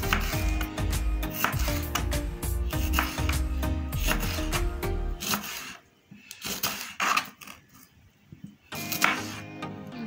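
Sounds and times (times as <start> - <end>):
knife cutting on plastic board: 0.0 - 7.7, 8.8 - 9.5.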